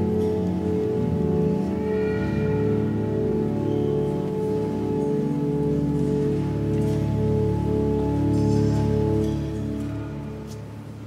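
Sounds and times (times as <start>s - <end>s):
pipe organ sustained chords: 0.0s - 11.0s.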